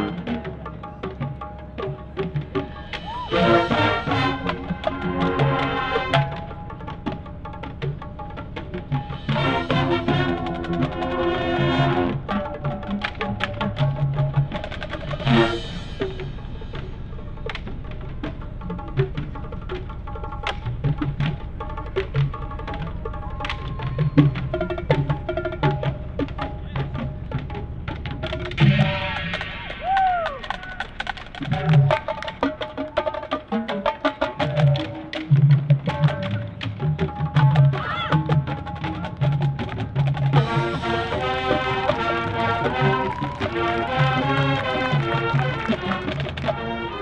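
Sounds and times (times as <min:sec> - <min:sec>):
sharp percussion strikes: 0:00.0 - 0:46.8
marching band playing: 0:00.0 - 0:47.0
drum hits: 0:00.2 - 0:46.6.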